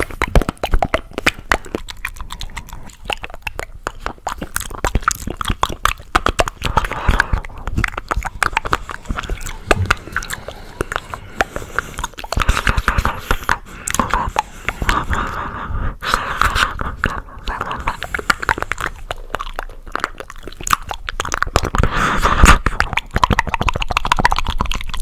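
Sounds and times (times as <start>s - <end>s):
chewing and sucking mouth clicks: 0.0s - 25.0s.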